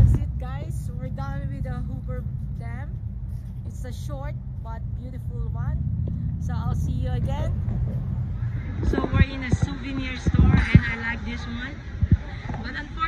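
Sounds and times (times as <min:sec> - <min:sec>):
people talking: 0:00.0 - 0:03.0, 0:03.7 - 0:05.8, 0:06.4 - 0:07.6, 0:08.6 - 0:13.0
steady low rumble: 0:00.0 - 0:13.0.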